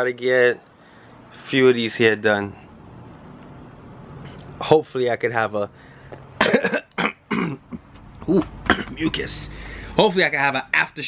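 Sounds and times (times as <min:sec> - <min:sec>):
man coughing phlegmy: 0:06.4 - 0:09.2.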